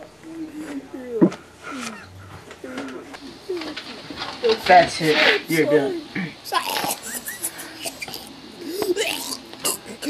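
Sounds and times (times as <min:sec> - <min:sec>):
person moaning: 0:06.5 - 0:10.0.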